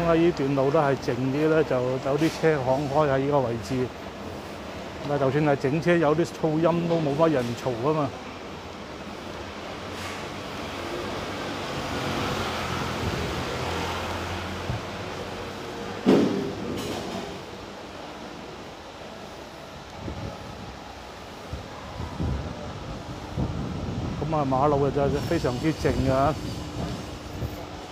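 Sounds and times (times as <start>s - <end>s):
sharp loud knock: 16.0s - 17.3s.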